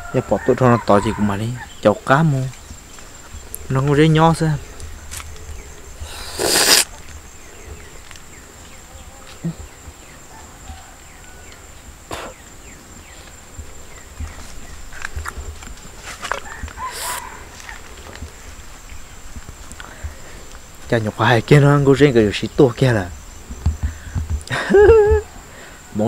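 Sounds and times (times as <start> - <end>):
high-pitched insect call: 0.0 - 26.0
person biting into crunchy fruit: 6.0 - 7.0
quiet chewing: 11.5 - 20.9.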